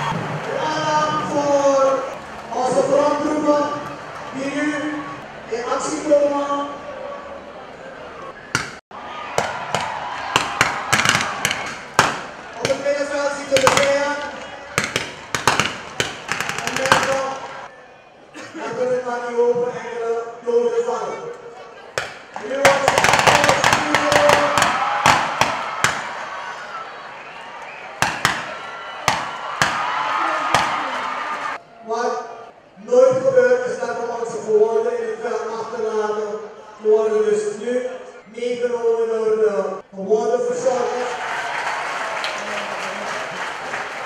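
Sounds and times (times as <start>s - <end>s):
steady background din: 6.8s - 18.6s, 21.8s - 31.6s
rifle shots: 14.8s - 17.6s, 22.6s - 26.1s.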